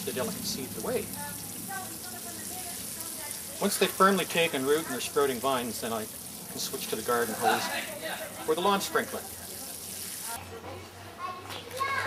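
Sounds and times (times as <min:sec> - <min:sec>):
water spraying onto soil: 0:00.0 - 0:10.4.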